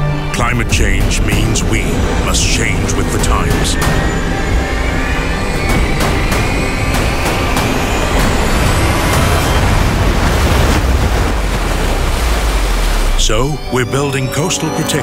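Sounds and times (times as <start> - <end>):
dramatic film music: 0.0 - 15.0
sharp hits: 0.4 - 12.1
ocean wave breaking: 0.9 - 13.8.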